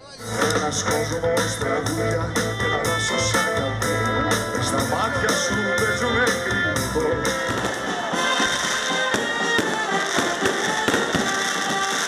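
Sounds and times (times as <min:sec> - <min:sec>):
live band with electric guitars: 0:00.0 - 0:12.0
fireworks crackling and banging: 0:04.6 - 0:12.0.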